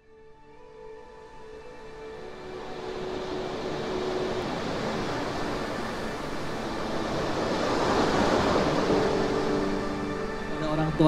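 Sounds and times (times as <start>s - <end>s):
faint music tones: 0.0s - 11.0s.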